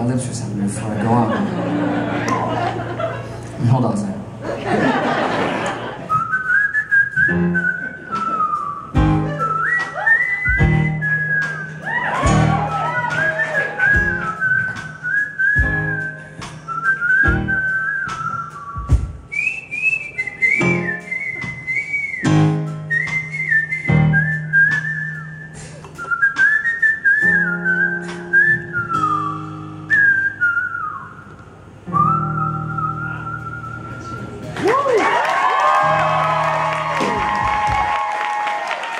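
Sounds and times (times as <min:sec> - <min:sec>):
man whistling a melody: 0:06.1 - 0:12.4, 0:13.1 - 0:34.4
piano chords: 0:07.3 - 0:18.0, 0:20.5 - 0:25.9
steady bass line: 0:09.0 - 0:09.6, 0:10.5 - 0:15.0, 0:22.3 - 0:25.4.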